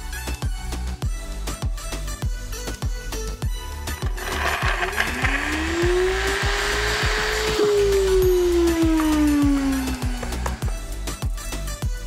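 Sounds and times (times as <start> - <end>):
background music with steady beat: 0.0 - 12.0
blender motor running: 3.8 - 11.0
gritty hiss of dry grinding: 3.9 - 10.7.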